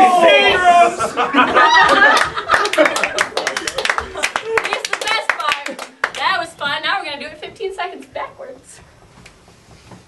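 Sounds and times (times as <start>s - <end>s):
audience clapping: 1.7s - 6.6s.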